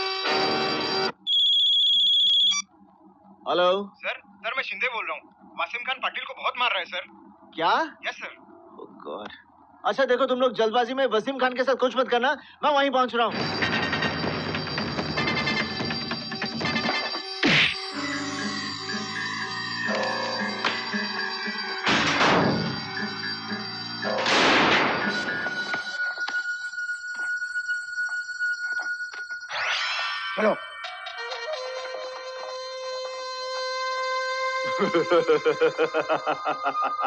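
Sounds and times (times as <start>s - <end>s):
mobile phone ringing: 0.0s - 2.6s, 13.3s - 33.0s
bell-like pulse: 13.3s - 31.4s
tense film score: 13.3s - 33.2s.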